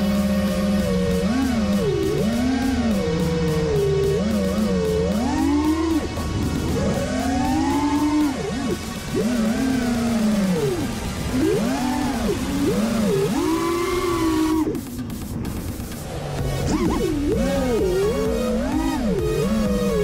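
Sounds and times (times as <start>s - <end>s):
quadcopter motors whining: 0.0s - 20.0s.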